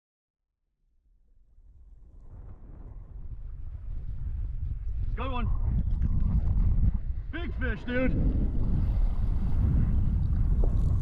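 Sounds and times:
wind rumbling on microphone: 1.3s - 11.0s.

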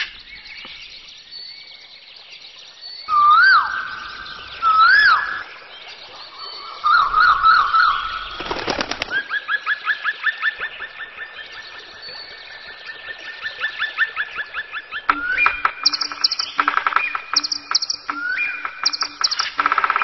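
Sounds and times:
songbirds singing: 0.0s - 20.0s
fast repeated bird chirps: 8.2s - 9.3s, 15.0s - 20.0s.

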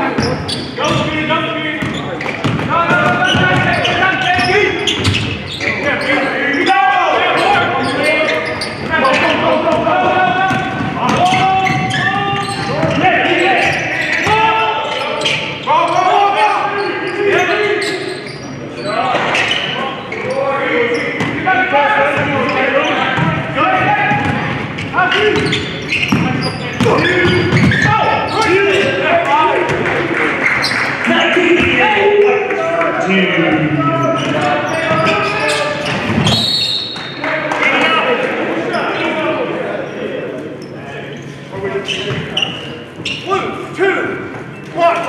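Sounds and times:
voices calling out in gym: 0.0s - 45.0s
basketball bouncing on hardwood: 1.8s - 3.7s.

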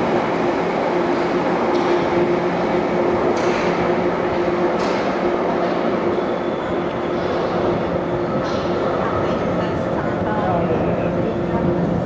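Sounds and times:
train rumbling into tunnel: 0.0s - 12.0s.

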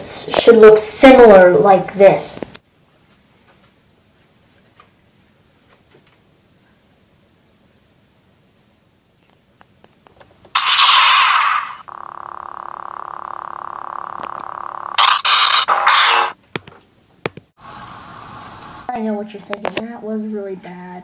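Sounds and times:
lightsaber hum: 10.6s - 16.4s
lightsaber ignition: 10.6s - 16.4s
clicks: 12.9s - 15.7s.

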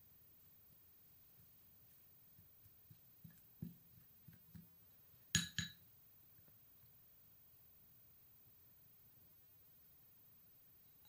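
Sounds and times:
spoon stirring paste in bowl: 1.2s - 6.5s
glass clinking on glass: 5.3s - 5.8s.

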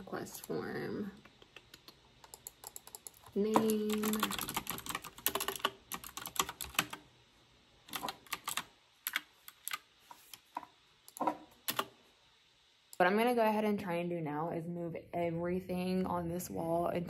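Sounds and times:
typing on computer keyboard: 2.2s - 7.0s, 7.9s - 9.8s, 11.2s - 11.9s.

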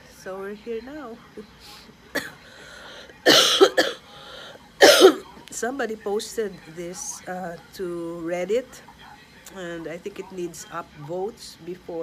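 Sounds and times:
person coughing: 2.1s - 2.5s, 3.2s - 4.1s, 4.8s - 5.3s.

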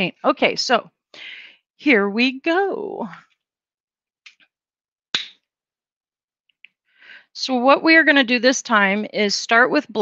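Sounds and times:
plastic bottle snap: 5.2s - 5.4s.

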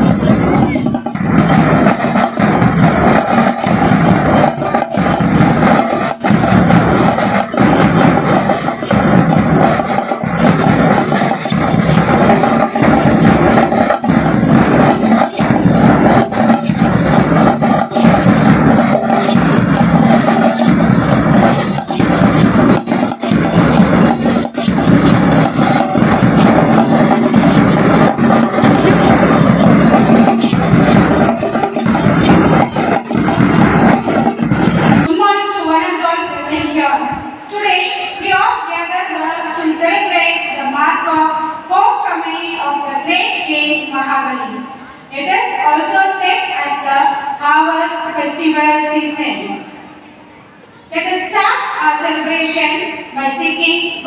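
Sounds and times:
bass drums: 0.0s - 35.1s
snare drums: 0.0s - 35.1s.

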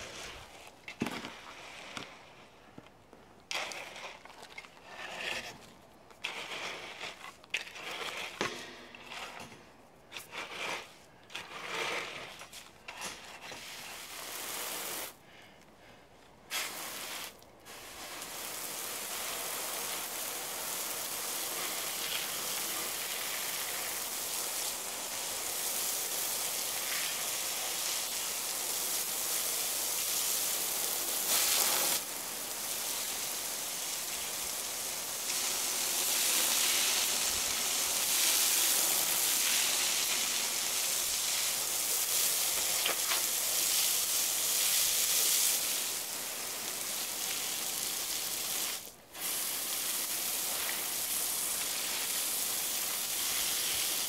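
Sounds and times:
hose spraying water: 13.5s - 15.2s, 16.5s - 54.0s.

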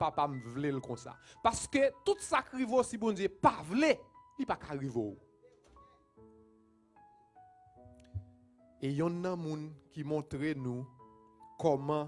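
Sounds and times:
man preaching: 0.0s - 5.2s, 8.8s - 10.9s, 11.6s - 12.0s
soft keyboard chords: 0.0s - 12.0s.

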